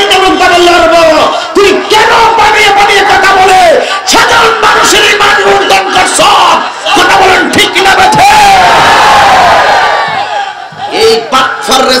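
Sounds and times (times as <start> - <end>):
crowd of men shouting: 0.0 - 11.3.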